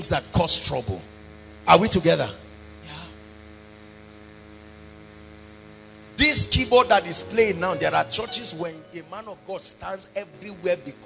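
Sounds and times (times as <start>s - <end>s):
sound system electrical hum: 0.0s - 11.0s.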